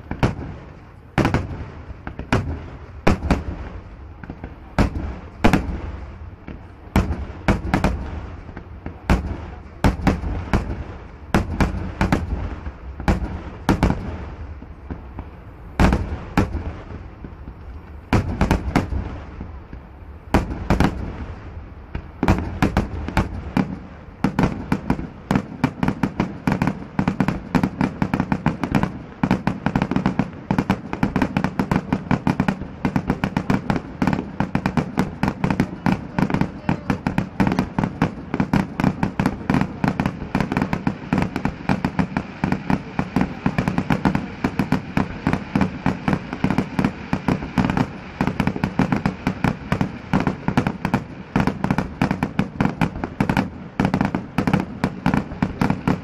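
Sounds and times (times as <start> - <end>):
fireworks bangs and crackles: 0.0 - 56.0.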